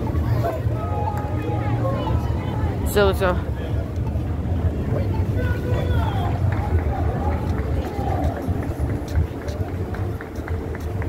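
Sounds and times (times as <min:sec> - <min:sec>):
indistinct voices of passers-by: 0:00.0 - 0:11.0
low traffic rumble: 0:00.0 - 0:11.0.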